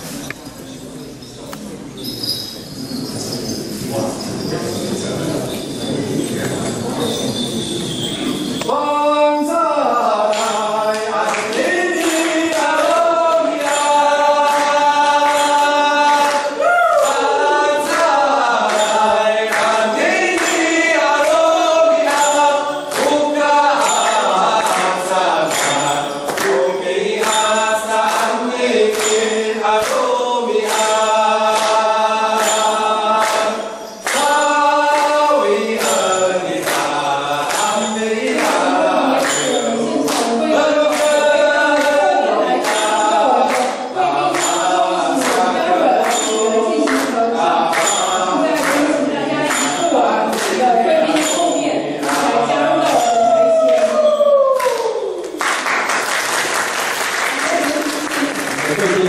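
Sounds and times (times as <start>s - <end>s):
men singing chant in harmony: 8.6s - 54.8s.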